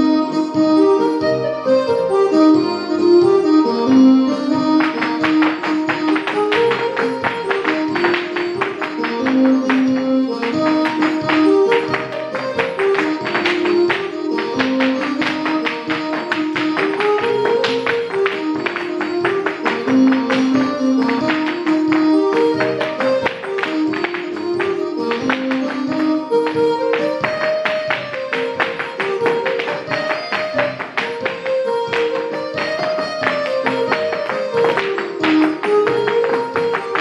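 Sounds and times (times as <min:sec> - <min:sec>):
traditional dance tune: 0:00.0 - 0:37.0
hard shoes tapping on floor: 0:03.8 - 0:37.0.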